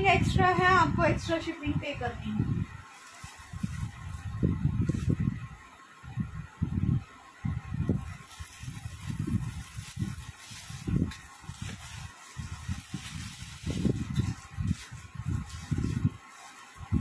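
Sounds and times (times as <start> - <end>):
clothing rustling: 2.9 - 5.2, 8.0 - 17.0.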